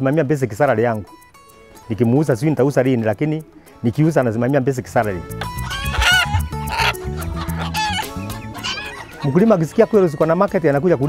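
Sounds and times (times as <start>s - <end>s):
background music: 0.0s - 11.0s
chicken clucking: 5.4s - 9.6s.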